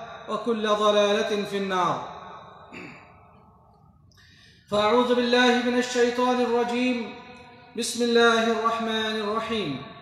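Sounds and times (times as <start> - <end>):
man preaching: 0.0 - 2.7, 4.7 - 10.0.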